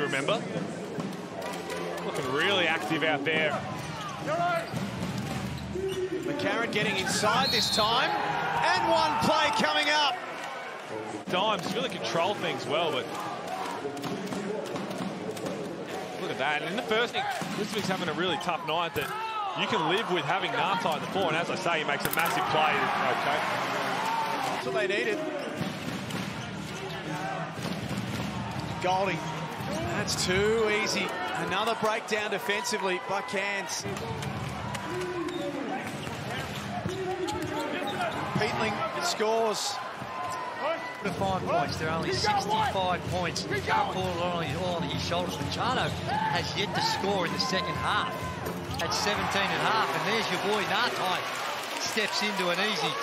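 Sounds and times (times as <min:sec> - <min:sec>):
arena crowd noise: 0:00.0 - 0:53.0.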